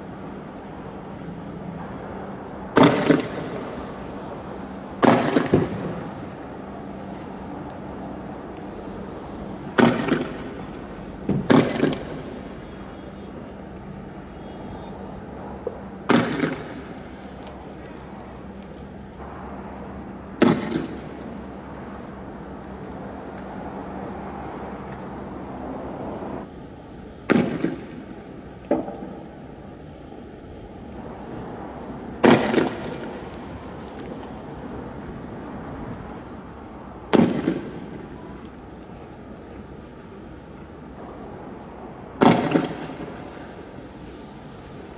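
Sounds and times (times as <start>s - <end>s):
loud gunshot with echo: 2.8s - 3.5s, 5.0s - 5.9s, 16.1s - 16.7s, 42.2s - 42.8s.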